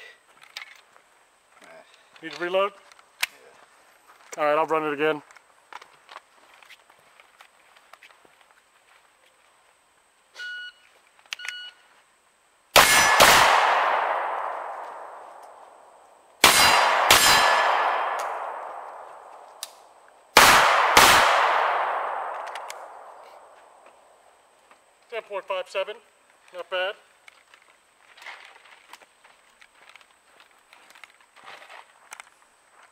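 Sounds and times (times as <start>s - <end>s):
pistol shots echoing: 12.8s - 23.8s.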